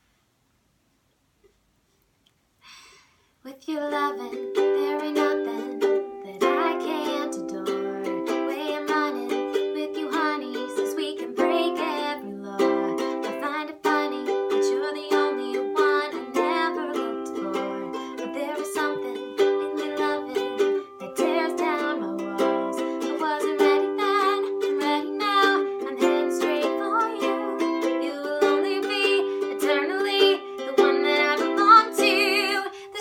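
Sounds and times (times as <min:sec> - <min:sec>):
ukulele strumming: 0:03.8 - 0:33.0.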